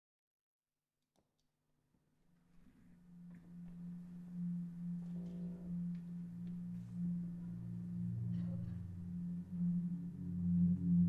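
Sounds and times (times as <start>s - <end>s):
low held musical note: 2.8s - 11.0s.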